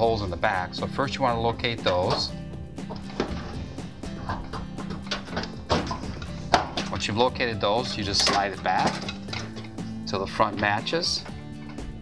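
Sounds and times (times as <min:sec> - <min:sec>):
background music: 0:00.0 - 0:12.0
sheet metal cover knocks: 0:04.2 - 0:06.9.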